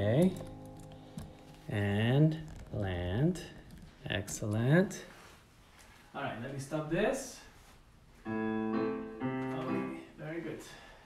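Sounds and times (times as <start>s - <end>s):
held piano chords: 0.0s - 3.3s, 8.2s - 10.6s.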